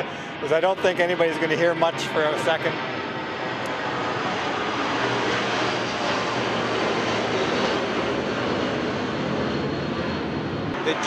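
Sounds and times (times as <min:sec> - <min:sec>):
jet airliner passing overhead: 0:00.0 - 0:11.0
speech: 0:00.4 - 0:02.8, 0:10.8 - 0:11.0.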